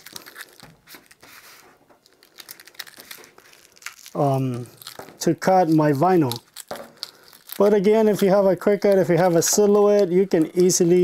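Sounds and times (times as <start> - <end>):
vinyl sheet crinkling and rustling: 0.0 - 11.0.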